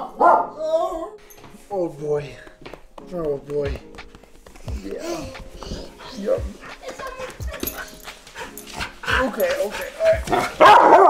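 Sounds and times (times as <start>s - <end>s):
knocks on wooden floor: 2.4s - 6.5s.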